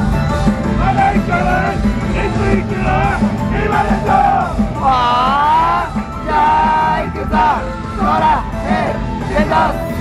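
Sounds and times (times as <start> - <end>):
up-tempo pop backing track: 0.0 - 10.0.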